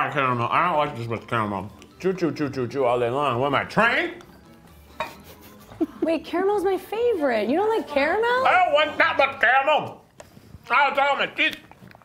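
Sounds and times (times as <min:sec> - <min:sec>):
tableware clink: 0:04.9 - 0:05.4.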